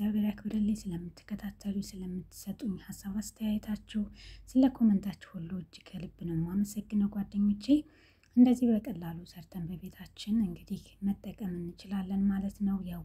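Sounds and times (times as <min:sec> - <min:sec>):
person talking: 0:00.0 - 0:13.0.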